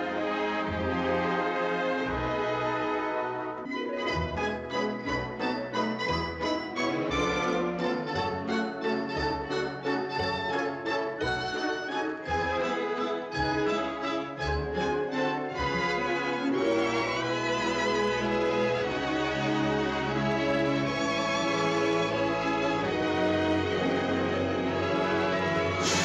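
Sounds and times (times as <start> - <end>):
orchestral film score: 0.0 - 26.0.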